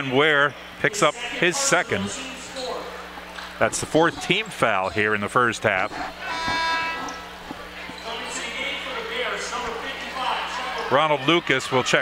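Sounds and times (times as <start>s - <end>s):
scorer's table horn buzz: 5.9s - 7.3s.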